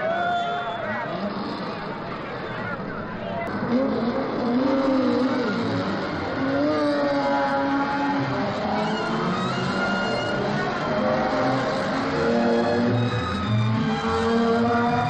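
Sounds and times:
race car engines revving: 0.0 - 15.0.

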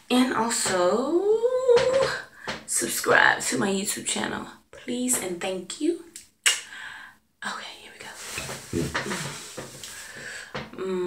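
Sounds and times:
rustling and handling noises: 8.0 - 10.4.

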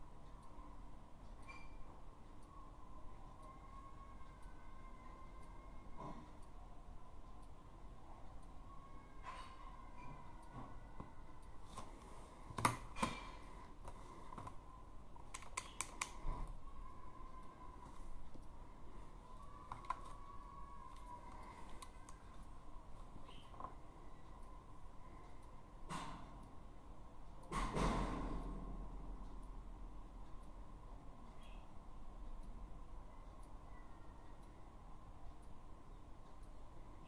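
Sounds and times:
handling clicks and taps: 19.6 - 20.2.

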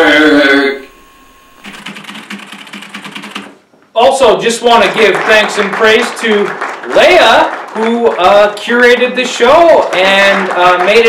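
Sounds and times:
fast typing on a keyboard: 1.7 - 3.6.

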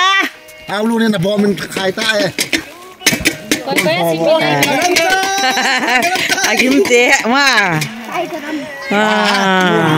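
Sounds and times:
sharp knocks: 1.7 - 4.0.

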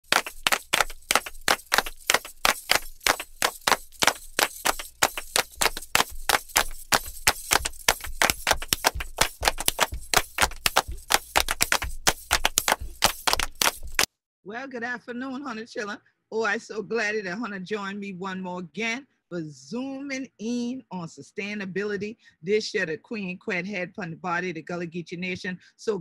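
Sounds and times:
fast loud percussion strikes: 0.0 - 14.1.

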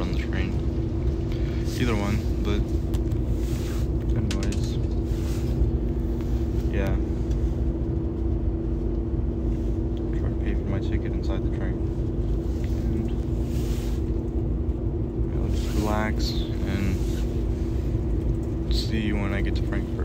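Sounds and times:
train carriage rumble: 0.0 - 20.0.

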